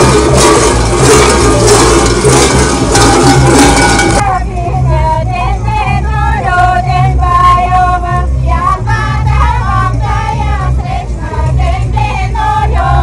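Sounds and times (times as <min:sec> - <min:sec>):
steady low rumble: 0:00.0 - 0:13.0
women singing folk melody: 0:04.2 - 0:13.0.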